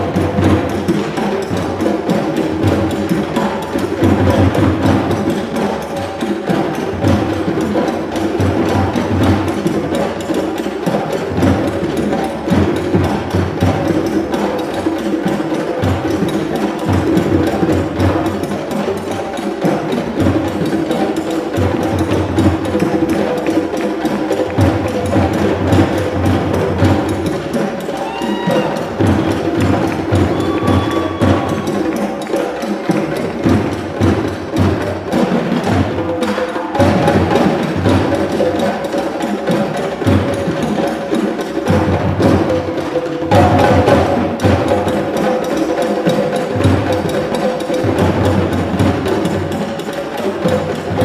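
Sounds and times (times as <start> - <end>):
hand drums playing: 0.0 - 51.0.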